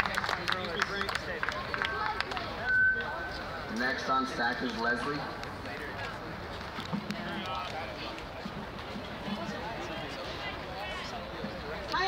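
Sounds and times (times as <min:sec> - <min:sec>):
crowd talking: 0:00.0 - 0:12.0
high steady tone: 0:02.6 - 0:03.4.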